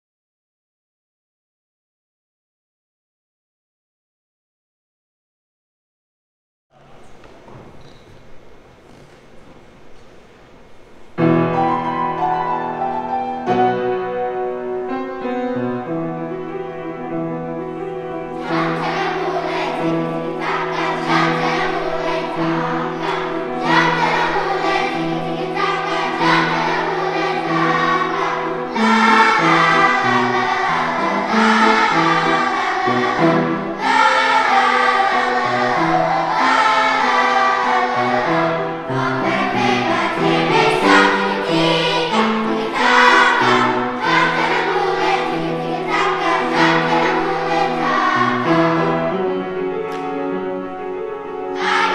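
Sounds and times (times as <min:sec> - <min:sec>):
piano accompaniment: 0:06.7 - 0:51.9
children's choir singing: 0:11.2 - 0:51.9.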